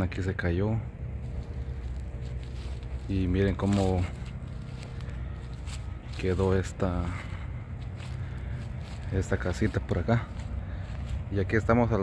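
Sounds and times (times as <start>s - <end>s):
steady low rumble: 0.0s - 12.0s
footsteps crunching on dry leaves: 0.9s - 12.0s.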